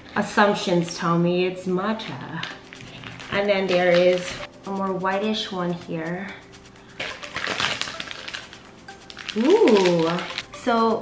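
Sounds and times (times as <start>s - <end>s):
plastic wrapper crinkling: 2.4s - 4.5s, 7.0s - 10.5s.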